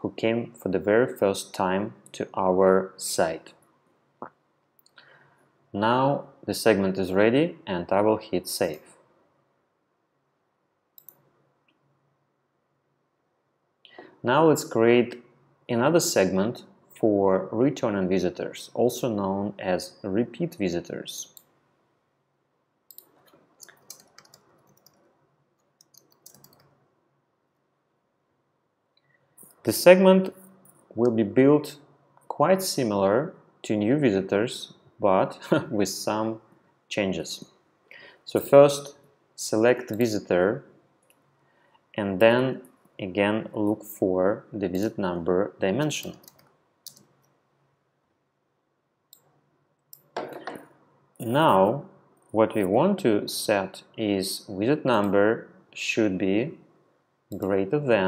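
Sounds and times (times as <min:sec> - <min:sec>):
faint room hum: 0:00.0 - 0:58.0
computer mouse clicks: 0:11.0 - 0:11.2, 0:22.9 - 0:26.8, 0:46.2 - 0:47.2.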